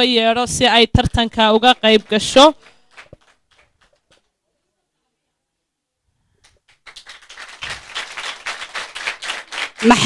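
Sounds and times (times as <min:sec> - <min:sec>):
audience applauding: 0:02.6 - 0:04.2, 0:06.6 - 0:10.0.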